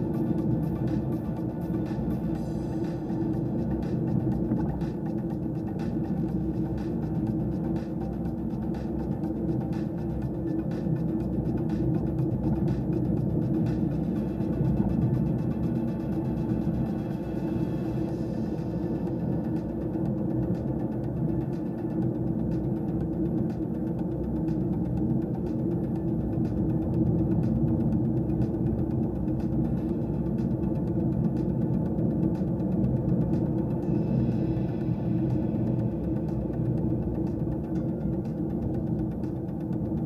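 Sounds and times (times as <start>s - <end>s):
car engine and tyre rumble: 0.0s - 40.0s.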